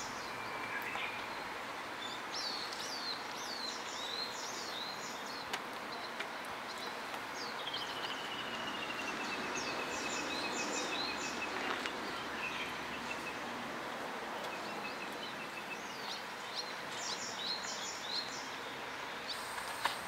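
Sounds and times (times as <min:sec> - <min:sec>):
outdoor background hiss: 0:00.0 - 0:20.0.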